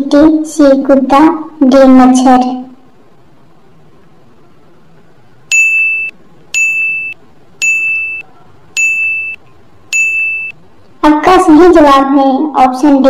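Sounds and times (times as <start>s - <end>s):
electronic ding beeps: 5.5s - 10.6s.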